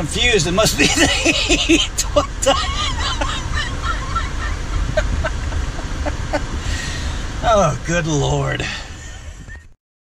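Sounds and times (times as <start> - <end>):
steady low rumble: 0.0 - 9.7
man laughing: 0.7 - 6.7.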